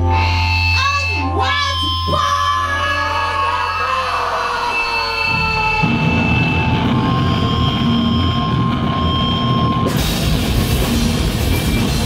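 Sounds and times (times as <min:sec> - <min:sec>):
amplifier feedback tones: 0:00.0 - 0:12.0
bass droning: 0:00.0 - 0:12.0
distorted electric guitar droning: 0:00.0 - 0:12.0
drums and cymbals crashing: 0:05.2 - 0:12.0.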